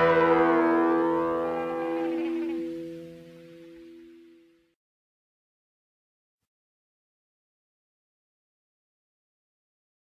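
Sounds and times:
rock song final chord: 0:00.0 - 0:03.6.

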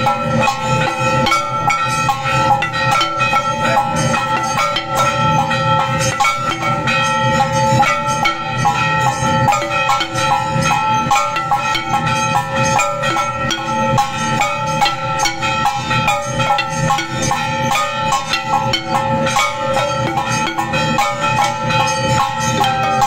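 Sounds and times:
bells ringing: 0:00.0 - 0:23.0
cymbals: 0:00.0 - 0:23.0
drums beating: 0:00.0 - 0:23.0.

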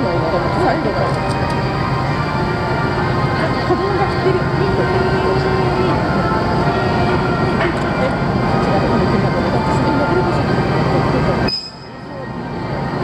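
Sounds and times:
people's voices: 0:00.0 - 0:13.0
ship diesel machinery drone: 0:00.0 - 0:13.0.

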